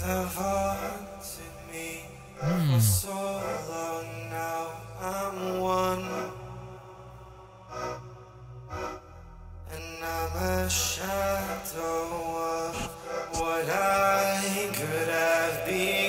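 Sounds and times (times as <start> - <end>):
percussive mouth hits: 2.4 - 3.0
deep bass hum: 2.4 - 3.1
held vocal tone chords: 2.4 - 3.2.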